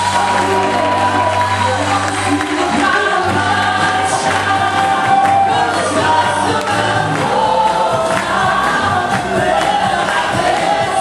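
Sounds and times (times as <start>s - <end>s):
electric bass: 0.0s - 11.0s
voices singing held notes: 0.0s - 11.0s.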